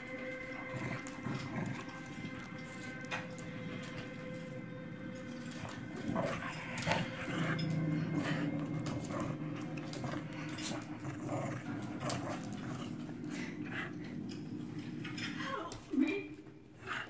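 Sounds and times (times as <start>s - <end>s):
small dogs growling: 0.0s - 4.5s, 5.2s - 15.6s.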